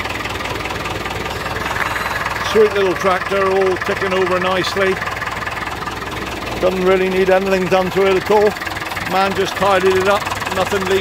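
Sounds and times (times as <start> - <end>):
tractor diesel engine idling: 0.0 - 11.0.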